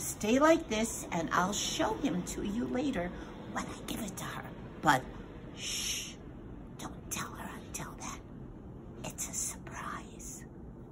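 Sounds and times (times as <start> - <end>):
woman whispering: 2.8 - 10.6.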